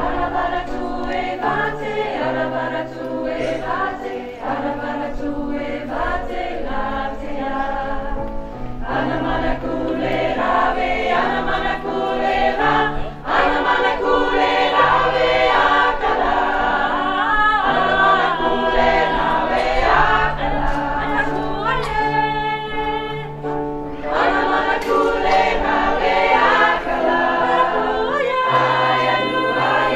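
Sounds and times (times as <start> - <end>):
choir of women singing: 0.0 - 29.9.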